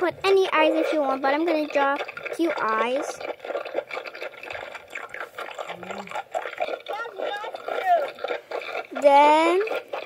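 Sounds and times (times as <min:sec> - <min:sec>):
children's voices: 0:00.0 - 0:03.2.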